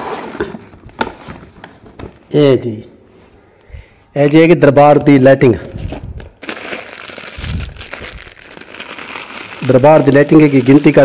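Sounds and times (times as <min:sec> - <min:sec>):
plastic wrapping crinkling: 0:05.8 - 0:11.0.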